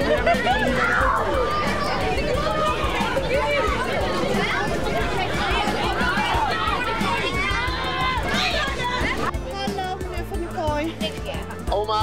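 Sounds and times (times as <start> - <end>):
children shouting: 0.0 - 9.3.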